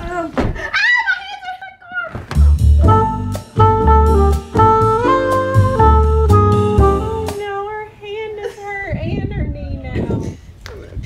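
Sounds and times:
background music: 0:02.4 - 0:07.6.

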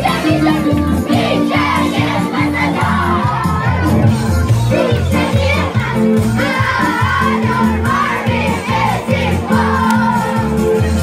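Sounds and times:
keyboard music over loudspeaker: 0:00.0 - 0:08.2.

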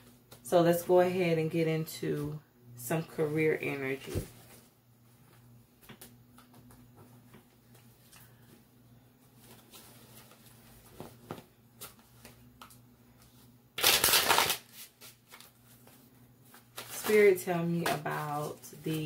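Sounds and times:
cards being shuffled: 0:09.4 - 0:18.2.

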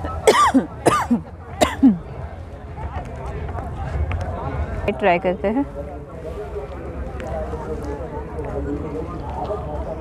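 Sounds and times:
woman coughing: 0:00.3 - 0:02.0.

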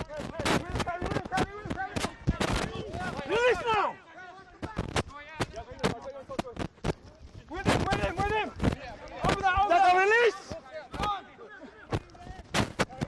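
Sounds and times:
sharp cracks: 0:00.0 - 0:03.8, 0:04.5 - 0:11.2, 0:11.9 - 0:13.0
players shouting: 0:00.1 - 0:05.6, 0:07.4 - 0:12.5.

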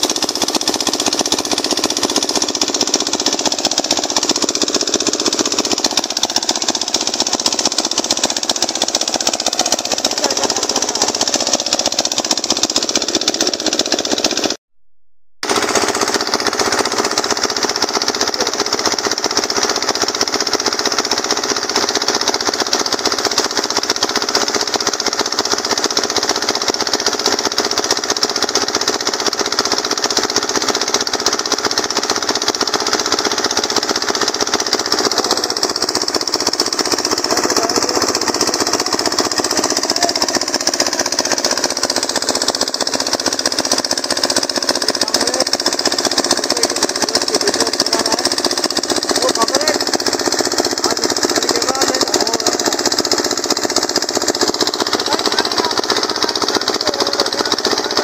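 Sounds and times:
mechanical knocking: 0:00.0 - 0:14.6, 0:15.4 - 0:58.0
water gushing into a tank: 0:00.0 - 0:14.6, 0:15.4 - 0:58.0.

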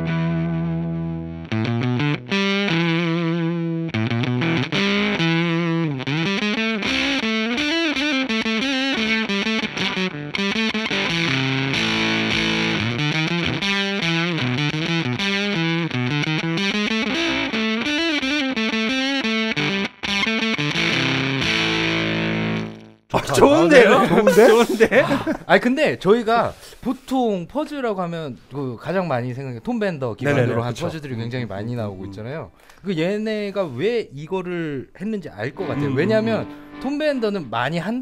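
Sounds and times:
fuzzed electric guitar lead: 0:00.0 - 0:23.8, 0:35.5 - 0:37.5.

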